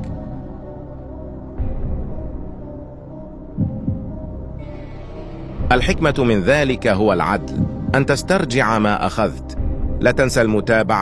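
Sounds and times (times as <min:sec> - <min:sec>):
low music drone: 0:00.0 - 0:11.0
heartbeat double thump: 0:03.6 - 0:04.3, 0:07.5 - 0:08.1.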